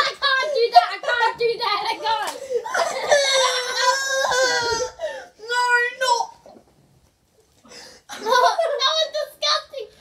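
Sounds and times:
girl wailing cry of disgust: 2.6 - 5.1.

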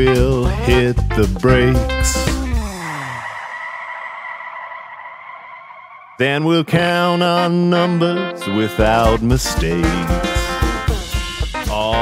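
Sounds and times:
music slowing down in pitch: 0.0 - 3.7, 8.8 - 12.0.

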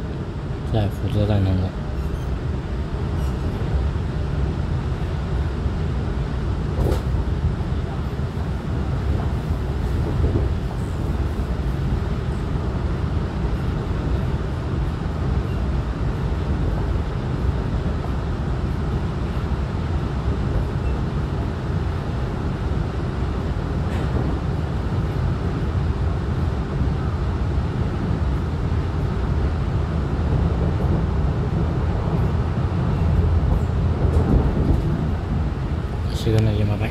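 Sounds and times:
electric train running rumble: 0.0 - 36.9.

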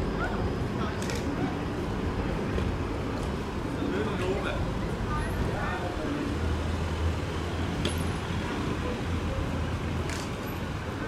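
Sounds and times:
traffic noise: 0.0 - 11.0
voices: 0.0 - 11.0.

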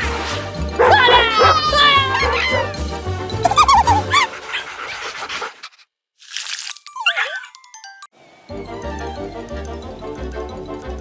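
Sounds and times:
squeaky cartoon sounds: 1.0 - 2.8, 3.4 - 4.7, 6.8 - 7.9.

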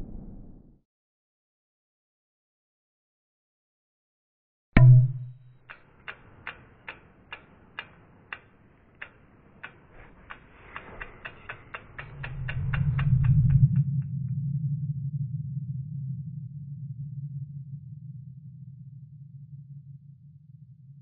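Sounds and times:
sharp ticks speeding up: 5.6 - 14.1
low hum drone: 11.2 - 21.0.

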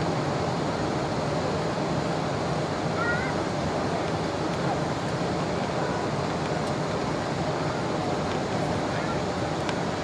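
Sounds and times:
airflow rushing over airframe: 0.0 - 10.0
jet engines humming: 0.0 - 10.0.

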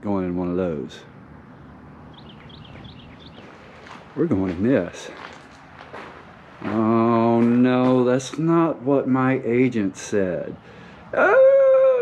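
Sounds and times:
low outdoor background hum: 0.0 - 12.0
small bird chirping: 1.5 - 3.8.

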